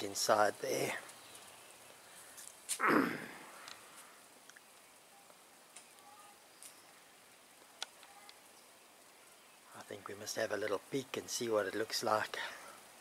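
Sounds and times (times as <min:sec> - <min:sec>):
low hiss: 0:00.0 - 0:13.0
man coughing: 0:02.8 - 0:03.4
faint sharp clicks: 0:03.6 - 0:03.8, 0:04.4 - 0:07.0, 0:07.6 - 0:08.4
faint chirps: 0:04.5 - 0:10.0.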